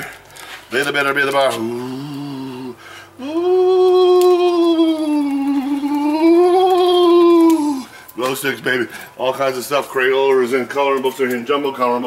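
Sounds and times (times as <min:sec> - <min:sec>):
man singing a long oooh: 0:01.5 - 0:07.9.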